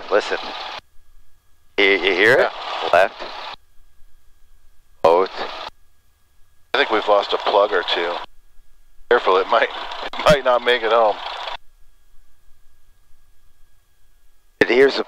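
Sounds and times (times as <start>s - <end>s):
voices through aircraft headset: 0.0s - 0.7s, 1.8s - 3.6s, 5.0s - 5.7s, 6.8s - 8.3s, 9.1s - 11.6s, 14.6s - 15.0s.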